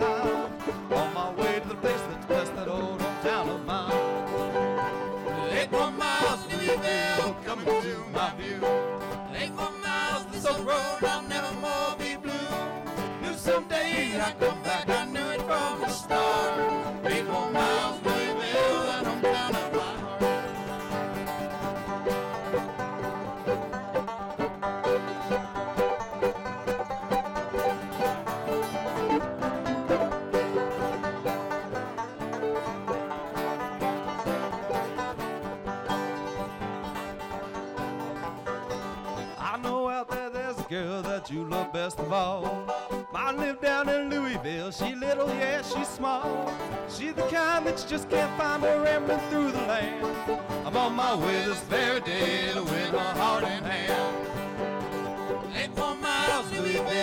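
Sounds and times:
bluegrass trio playing: 0.0s - 57.0s.

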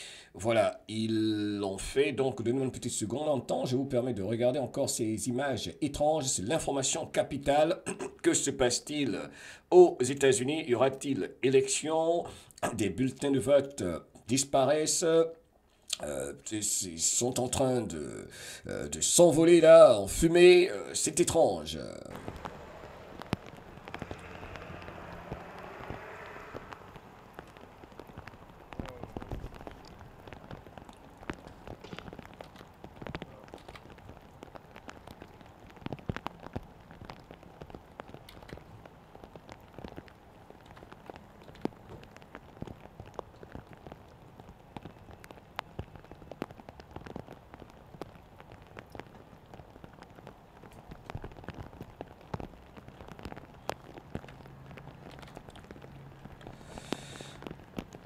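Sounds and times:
burning paper crackling: 21.2s - 58.0s
soft hiss: 21.9s - 30.5s, 56.4s - 57.6s.

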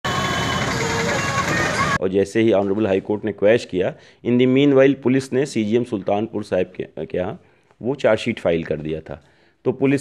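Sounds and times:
traffic noise: 0.0s - 2.0s.

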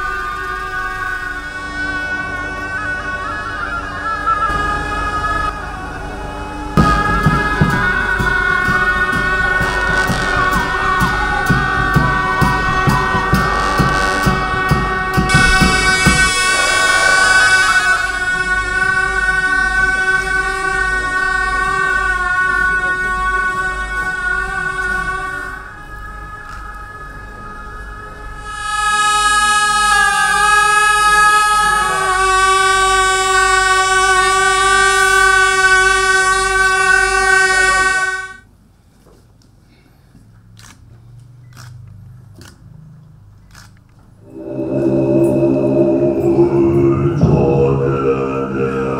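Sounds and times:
steady low pulse: 0.0s - 38.4s, 44.2s - 48.9s
double-reed horns holding notes: 0.0s - 38.5s, 44.2s - 48.9s.

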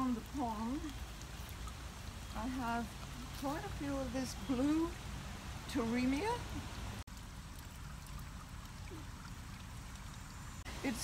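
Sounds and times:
trickle of running water: 0.0s - 11.0s.

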